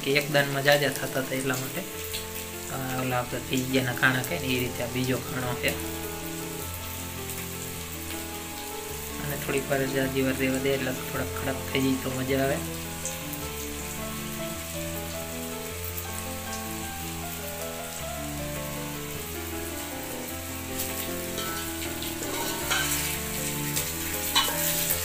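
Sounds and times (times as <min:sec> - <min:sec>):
dumplings sizzling in oil: 0:00.0 - 0:25.0.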